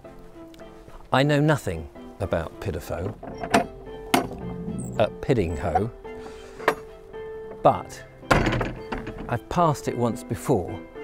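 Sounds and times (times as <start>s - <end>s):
soft background music: 0.0s - 11.0s
gate latch clicking: 3.1s - 7.7s, 8.3s - 9.4s.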